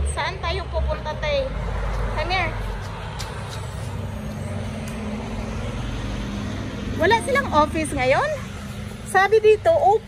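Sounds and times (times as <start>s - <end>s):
steady engine hum: 0.0s - 10.0s.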